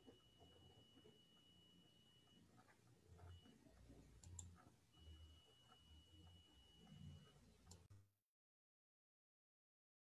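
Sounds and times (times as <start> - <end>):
faint high steady tone: 0.0 - 2.6, 4.2 - 7.9.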